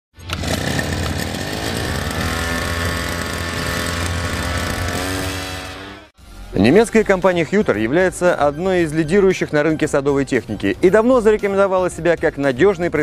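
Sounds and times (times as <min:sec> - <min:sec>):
music: 0:00.2 - 0:01.1, 0:06.2 - 0:13.0
small engine at high revs: 0:00.2 - 0:06.2.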